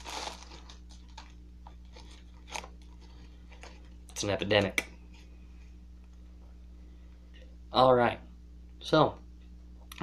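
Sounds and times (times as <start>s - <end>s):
tobacco and plastic bag crinkling: 0.0s - 4.4s
steady low hum: 0.0s - 10.0s.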